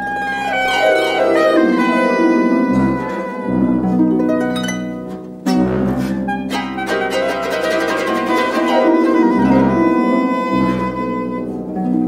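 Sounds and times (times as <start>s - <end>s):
folk music on plucked and bowed strings: 0.0s - 12.0s.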